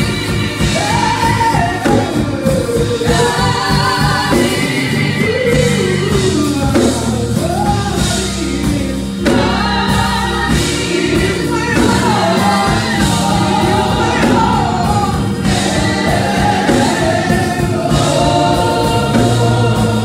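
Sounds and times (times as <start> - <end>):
women's gospel choir singing: 0.0 - 20.0.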